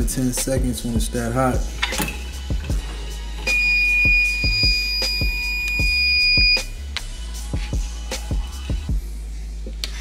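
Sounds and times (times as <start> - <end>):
hip hop music: 0.0 - 10.0
high-pitched timer beep: 3.5 - 6.7.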